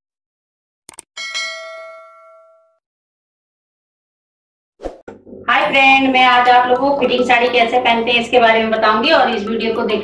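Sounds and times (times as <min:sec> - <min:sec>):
bright bell ding: 0:01.2 - 0:02.8.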